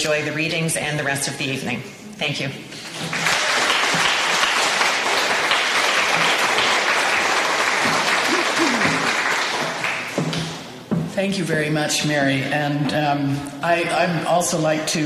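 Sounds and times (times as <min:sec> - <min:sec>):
audience applauding: 0:02.8 - 0:10.7.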